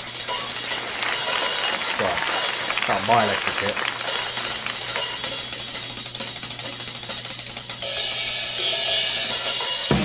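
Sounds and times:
fast drum stick work: 0.0s - 10.0s
ringing cymbals: 7.8s - 10.0s.

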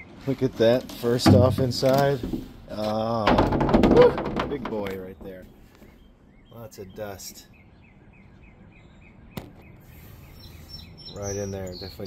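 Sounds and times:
faint outdoor background: 0.0s - 12.0s
faint bird chirps: 5.0s - 12.0s.

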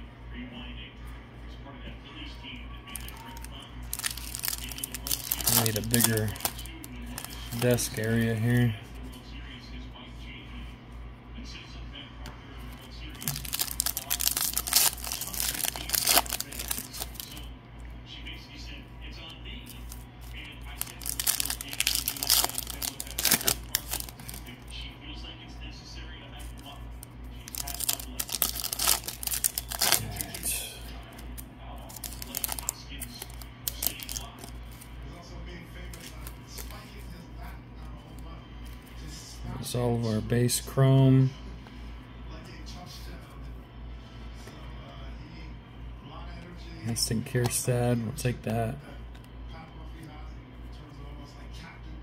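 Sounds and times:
steady low hum: 0.0s - 52.0s
foil wrappers tearing and crinkling: 2.9s - 8.6s, 13.1s - 17.4s, 19.6s - 24.7s, 27.4s - 34.8s.

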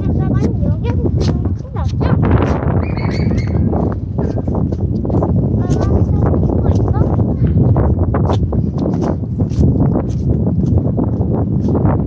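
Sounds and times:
wind rumbling on microphone: 0.0s - 12.0s
high bird chirps: 2.8s - 3.7s.

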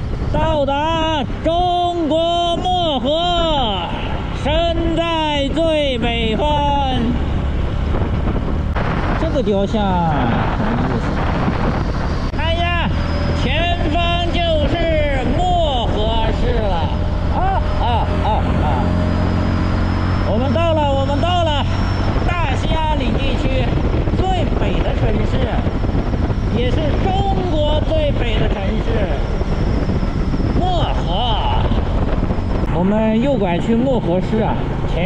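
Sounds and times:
motorcycle engine running: 0.0s - 9.5s, 10.4s - 35.0s
wind and road noise: 0.0s - 35.0s
man calling out and laughing: 0.6s - 7.3s, 13.7s - 19.2s, 30.6s - 31.9s.

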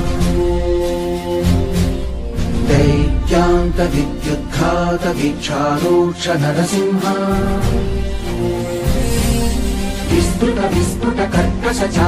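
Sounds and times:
steady low drone: 0.0s - 6.2s
person chanting: 2.7s - 8.0s.

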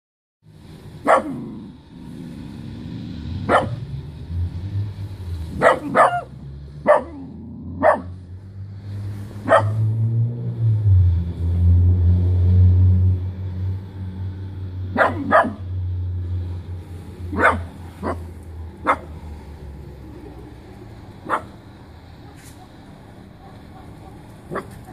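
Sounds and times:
dog barking: 1.0s - 1.5s, 3.5s - 3.9s, 5.6s - 8.2s, 9.4s - 9.9s, 14.9s - 15.7s, 17.3s - 19.2s, 21.2s - 21.6s, 23.4s - 24.9s.

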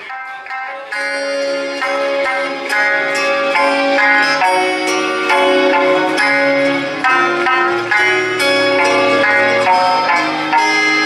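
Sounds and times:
acoustic guitar accompaniment: 0.0s - 11.0s
plucked sanshin melody: 0.0s - 11.0s.

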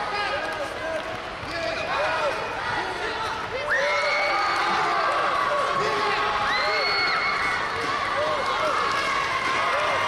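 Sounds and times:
echoing voices in hall: 0.0s - 10.0s.

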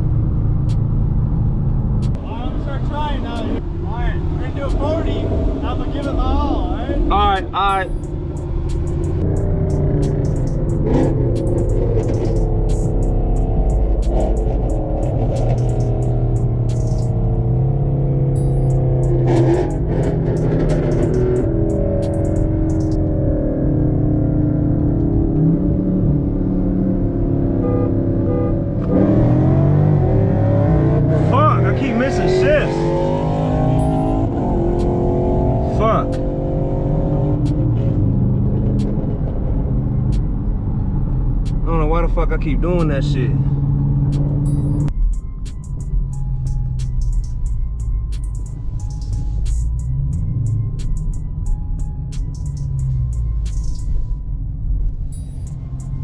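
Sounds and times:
car engine from inside cabin: 7.8s - 42.2s.

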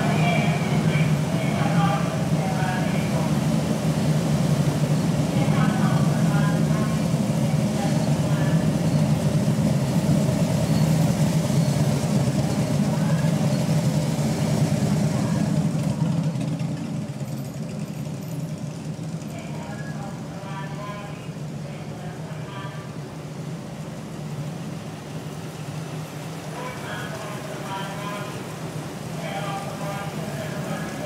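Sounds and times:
motorcycle engines droning: 0.0s - 31.0s.

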